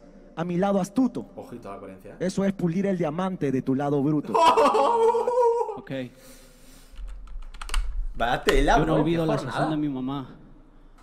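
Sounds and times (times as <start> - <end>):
computer keyboard clicks: 7.0 - 7.9.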